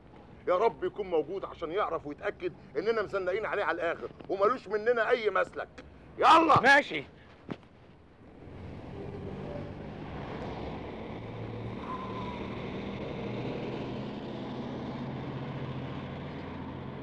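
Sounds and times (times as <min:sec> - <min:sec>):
traffic rumble: 0:00.0 - 0:17.0.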